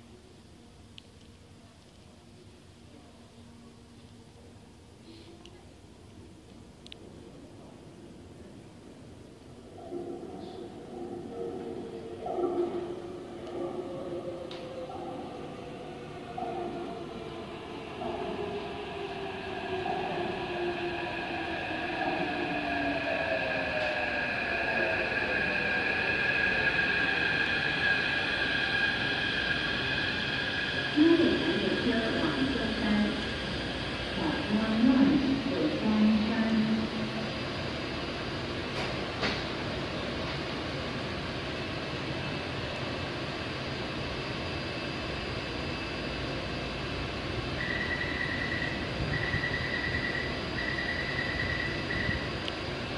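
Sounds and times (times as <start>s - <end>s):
train rumble: 10.7s - 52.9s
steady high whine: 13.4s - 38.7s.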